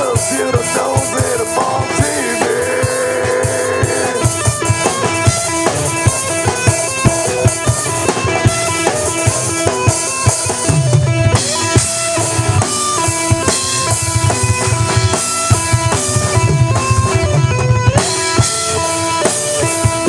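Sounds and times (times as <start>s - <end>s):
bass guitar: 0.0s - 20.0s
drum kit beat: 0.0s - 20.0s
electric guitars playing melody: 0.0s - 20.0s.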